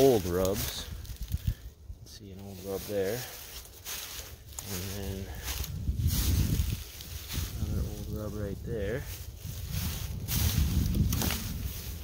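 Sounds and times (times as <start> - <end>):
footsteps through dry leaves: 0.0 - 12.0
man speaking: 2.1 - 3.3, 4.6 - 5.4, 7.6 - 9.1.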